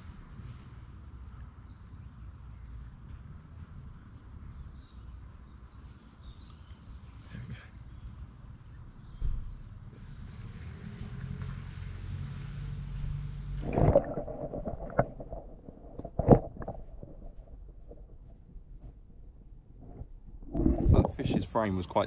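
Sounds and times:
low rumbling: 12.8 - 21.5
loud water splash: 13.6 - 16.6
muffled underwater knocks: 13.6 - 19.0
underwater gurgling: 13.6 - 19.0, 19.8 - 21.3.

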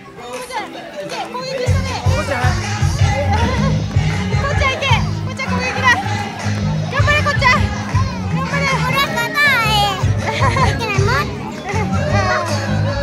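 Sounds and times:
children shrieking and shouting: 1.3 - 13.0
music with bass beat: 1.7 - 13.0.

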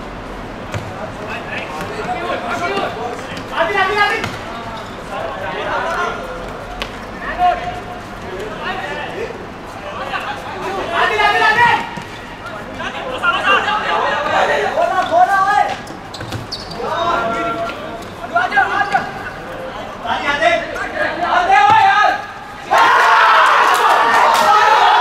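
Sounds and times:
ball kicked on hard court: 0.7 - 1.0
footballers shouting: 9.8 - 15.8, 16.7 - 25.0.

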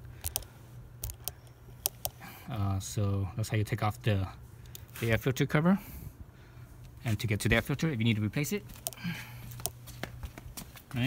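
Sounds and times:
steady low hum: 0.0 - 11.0
handheld camera handling noise: 0.2 - 2.2, 8.7 - 9.8.

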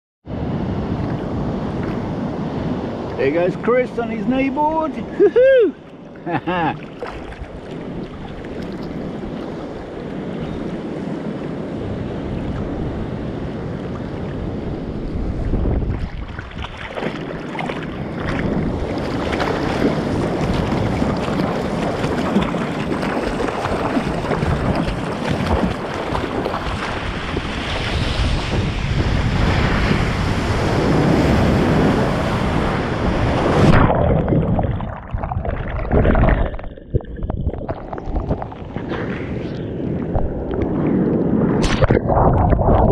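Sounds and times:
wind on microphone: 0.3 - 42.9
water lapping around surfboard: 5.1 - 42.9
hands paddling water splashing: 6.7 - 9.8, 15.5 - 27.8, 33.6 - 40.8.

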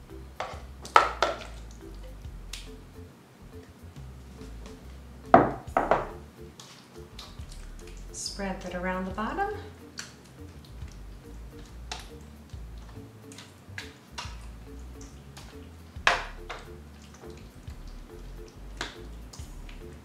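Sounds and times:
soft background music: 0.0 - 20.0
spoon scraping and tapping a pan: 0.4 - 2.8, 10.0 - 17.4.

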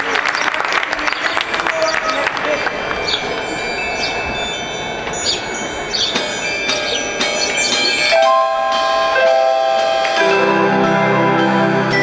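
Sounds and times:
held synthesizer notes: 2.7 - 12.0
bell-like mallet strikes: 2.8 - 12.0.

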